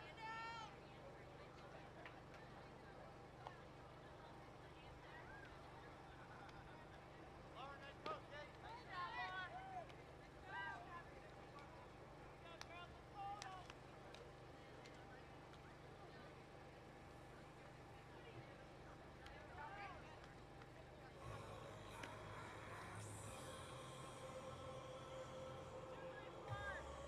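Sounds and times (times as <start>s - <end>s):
low background hum: 0.0s - 27.0s
distant voices calling out: 21.1s - 27.0s.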